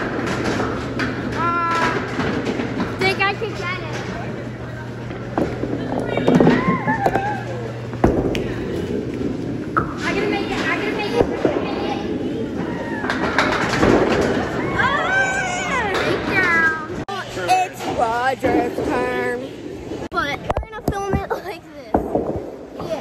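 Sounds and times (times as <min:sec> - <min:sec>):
bowling ball rolling: 0:00.0 - 0:17.0.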